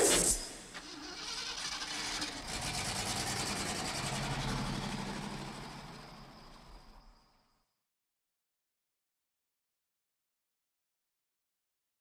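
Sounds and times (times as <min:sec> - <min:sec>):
sparking electrical blast: 0:00.0 - 0:00.8
engine-like rumble: 0:00.6 - 0:07.7.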